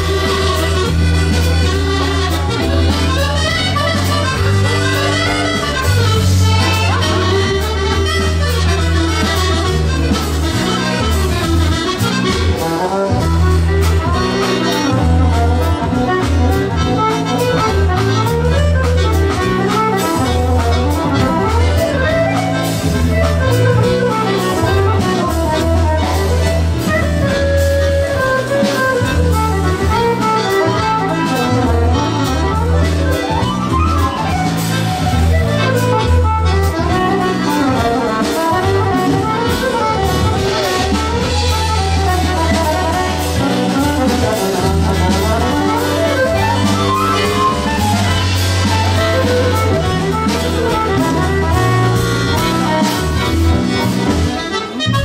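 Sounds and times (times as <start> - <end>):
accordions playing a waltz: 0.0 - 55.0
bass accompaniment: 0.0 - 55.0
drum kit: 0.0 - 55.0.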